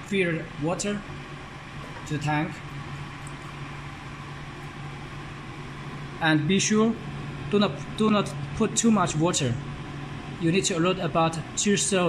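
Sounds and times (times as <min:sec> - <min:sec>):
control box hum: 0:00.0 - 0:12.0.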